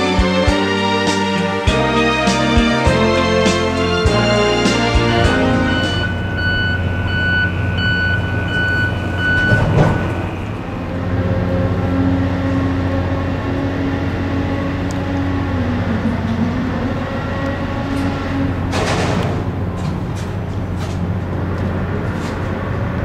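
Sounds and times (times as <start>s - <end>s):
heavy vehicle engine humming: 0.0s - 23.0s
reversing alarm beeping: 4.1s - 10.8s.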